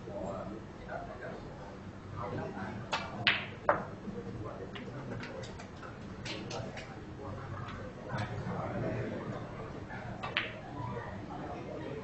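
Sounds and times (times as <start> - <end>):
low background murmur: 0.0 - 12.0.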